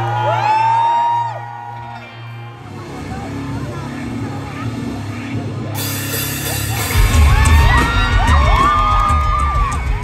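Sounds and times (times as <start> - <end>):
audience whooping and cheering: 0.0 - 2.6, 6.8 - 10.0
live rock band: 3.1 - 10.0.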